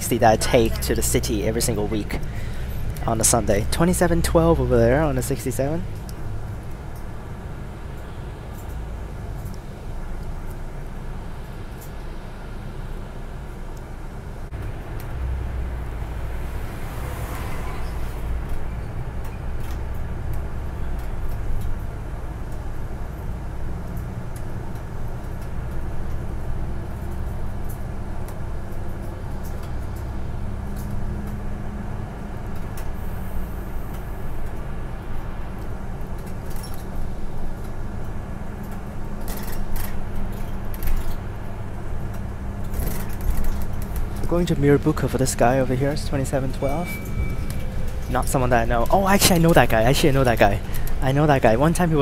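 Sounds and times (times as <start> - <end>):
bus engine and road rumble: 0.0 - 52.0.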